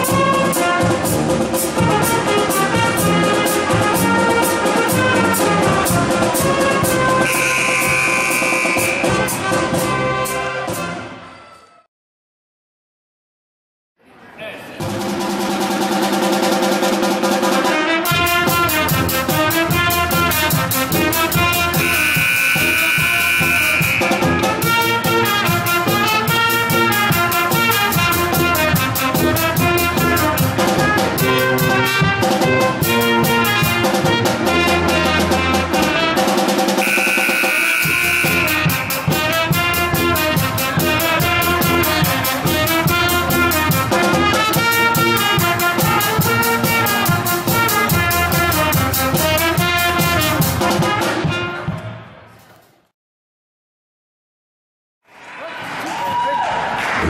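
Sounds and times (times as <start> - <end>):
drum beat: 0.0 - 10.0, 14.8 - 34.2, 35.9 - 51.0
brass band holding high note: 0.0 - 11.2, 17.5 - 51.7.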